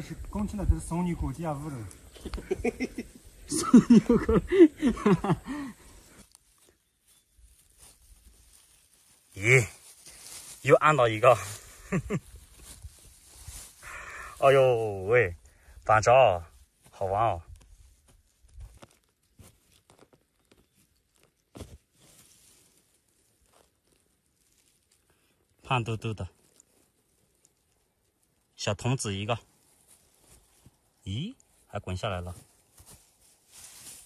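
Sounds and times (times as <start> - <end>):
pine needles and soil crackling: 0.0 - 34.0
man laughing: 2.2 - 5.8, 11.4 - 12.2.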